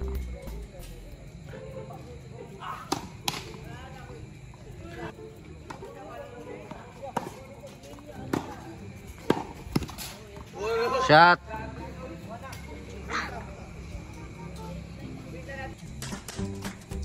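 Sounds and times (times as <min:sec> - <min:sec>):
tennis ball struck by racket: 0:02.9 - 0:03.6, 0:09.2 - 0:10.1
tennis ball bouncing: 0:07.2 - 0:07.4, 0:08.2 - 0:10.1.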